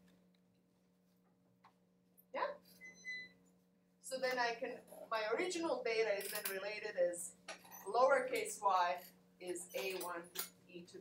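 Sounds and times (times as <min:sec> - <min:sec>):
low electrical hum: 0:00.0 - 0:11.0
high-pitched squeak: 0:02.7 - 0:03.4.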